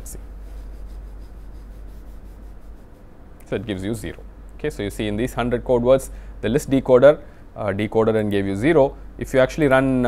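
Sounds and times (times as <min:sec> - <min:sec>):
faint rubbing noise: 0:00.0 - 0:03.8
steady low hum: 0:00.0 - 0:10.0.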